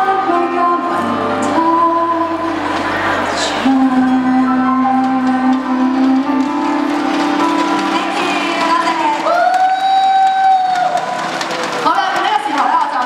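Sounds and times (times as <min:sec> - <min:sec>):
woman singing pop song: 0:00.0 - 0:10.6
backing track: 0:00.0 - 0:13.0.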